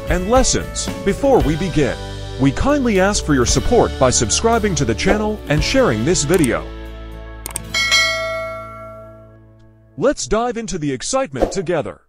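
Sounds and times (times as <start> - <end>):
notification bell chime: 7.7 - 9.3.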